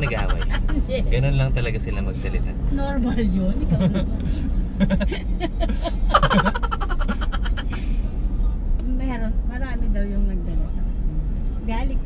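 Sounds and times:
voices: 0.0s - 4.0s, 5.9s - 7.8s
car rumble from inside cabin: 0.0s - 12.0s.

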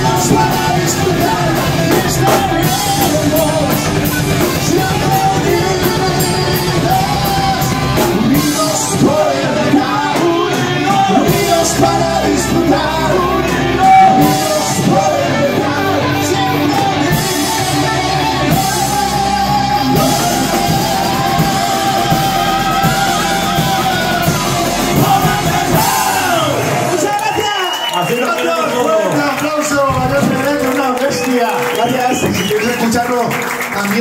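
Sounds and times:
bass guitar: 0.0s - 27.3s
electric guitars: 0.0s - 27.9s
heavy metal band playing live: 0.0s - 27.9s
drum kit: 0.0s - 28.5s, 29.3s - 33.0s
singing into microphones: 0.0s - 33.3s.

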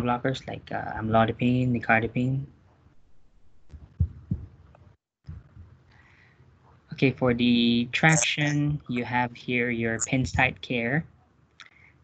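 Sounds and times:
soft low thumps: 3.1s - 4.6s, 5.2s - 5.8s, 10.0s - 10.6s.

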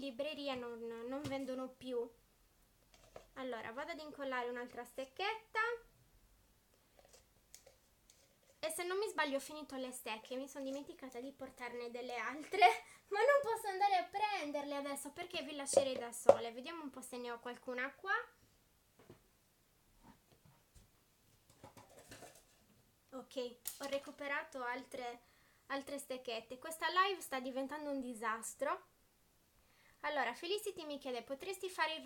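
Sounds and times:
clicks and rustles of rummaging: 21.5s - 22.6s.

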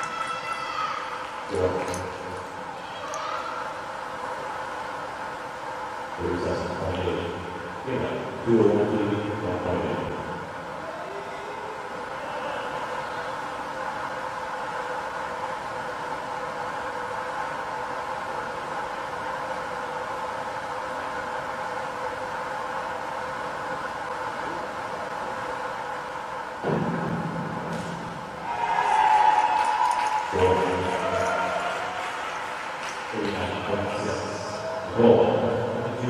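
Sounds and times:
indoor pool hall hum: 0.0s - 36.0s
voices shouting: 28.4s - 32.5s.

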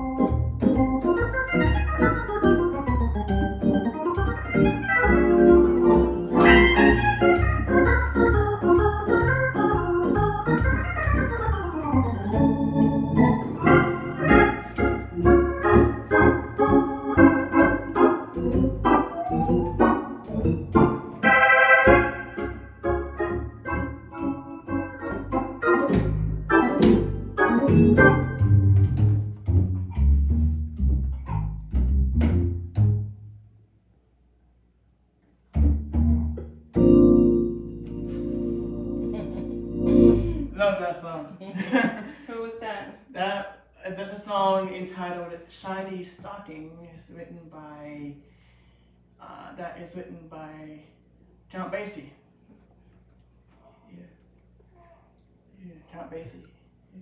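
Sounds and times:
organ playing chords and runs: 0.0s - 33.2s, 35.6s - 40.8s.

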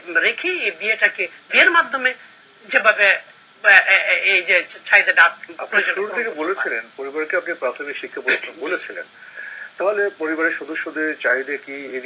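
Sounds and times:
man talking: 5.5s - 12.0s.

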